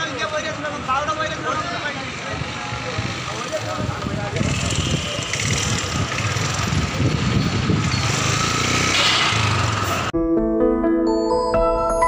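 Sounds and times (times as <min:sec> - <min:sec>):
street traffic: 0:00.0 - 0:10.2
wind buffeting microphone: 0:02.3 - 0:08.4
motorbike engine running: 0:02.7 - 0:10.1.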